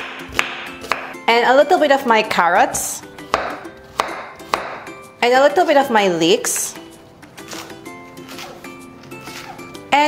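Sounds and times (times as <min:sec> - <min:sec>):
knife chopping on wooden board: 0:00.0 - 0:01.2, 0:03.3 - 0:04.9
soft background music: 0:00.0 - 0:10.0.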